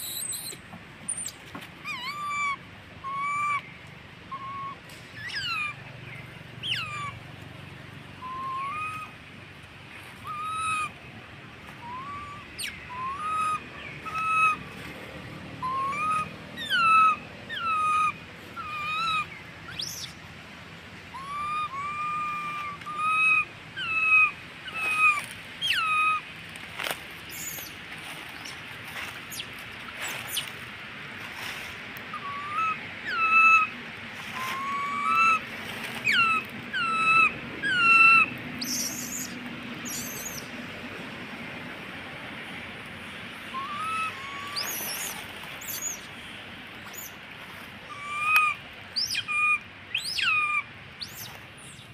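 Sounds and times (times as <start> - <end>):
infant monkey coo calls: 0.0 - 3.7, 4.3 - 5.9, 6.6 - 7.2, 8.2 - 9.2, 10.2 - 11.0, 11.8 - 14.7, 15.6 - 20.2, 21.1 - 26.3, 32.1 - 40.5, 43.3 - 46.3, 46.9 - 47.2, 47.9 - 51.8.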